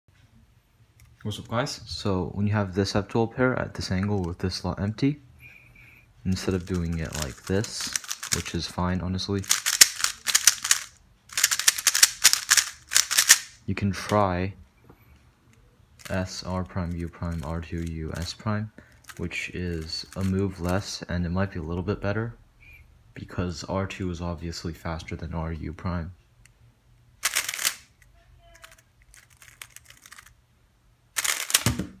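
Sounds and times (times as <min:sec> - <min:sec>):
puzzle cube plastic clacks: 0:06.3 - 0:08.6, 0:09.4 - 0:14.2, 0:16.8 - 0:20.8, 0:27.2 - 0:30.4, 0:31.2 - 0:31.9
cube set down on mat: 0:31.4 - 0:32.0.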